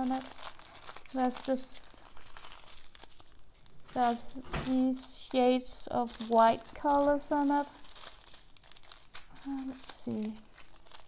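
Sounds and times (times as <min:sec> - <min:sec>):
plastic bags crinkling: 0:00.0 - 0:11.0.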